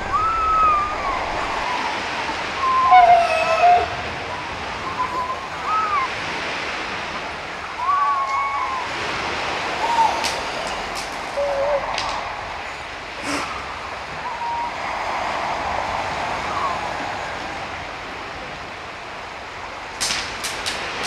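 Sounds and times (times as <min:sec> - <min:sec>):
short wavering pitched calls: 0:00.0 - 0:06.2, 0:09.8 - 0:14.9
wind and surf rushing: 0:00.0 - 0:21.0.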